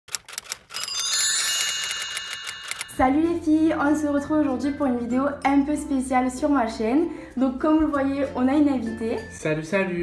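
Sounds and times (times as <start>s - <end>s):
high bell-like tones: 0.8s - 3.6s.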